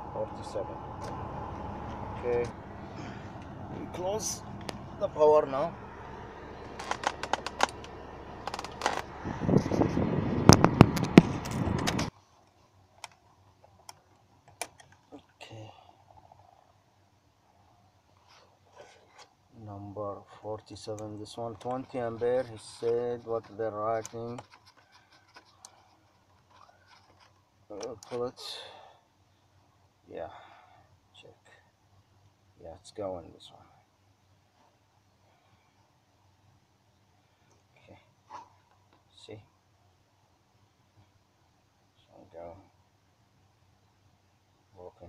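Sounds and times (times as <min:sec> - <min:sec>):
man speaking: 0:00.0 - 0:01.0, 0:02.1 - 0:02.6, 0:03.7 - 0:05.8
low background noise: 0:12.1 - 0:45.0
rustling handling noise: 0:21.4 - 0:28.2.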